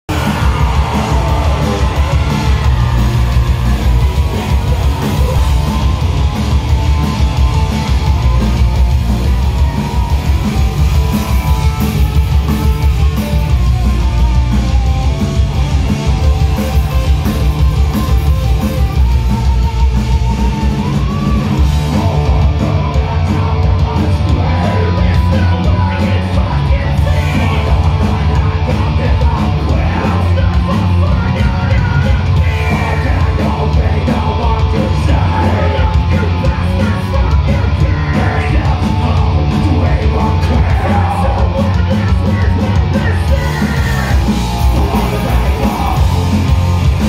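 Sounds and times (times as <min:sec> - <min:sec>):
loud live rock band: 0:00.0 - 0:47.0
shouted vocals: 0:00.1 - 0:13.6, 0:20.3 - 0:47.0.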